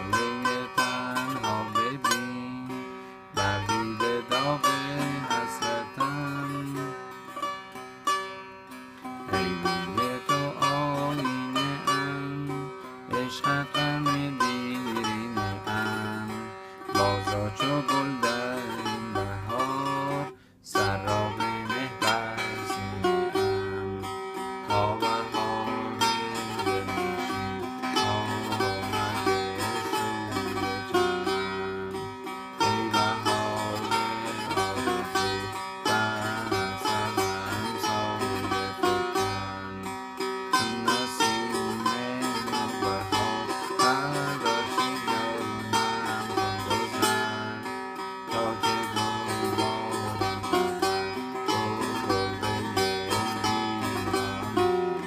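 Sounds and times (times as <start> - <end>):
long-necked lute plucked: 0.0 - 55.0.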